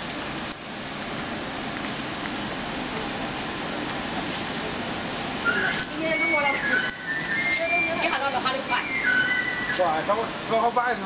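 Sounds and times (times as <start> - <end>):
high whistled notes: 5.4 - 10.3
people talking: 5.5 - 9.1, 9.7 - 11.0.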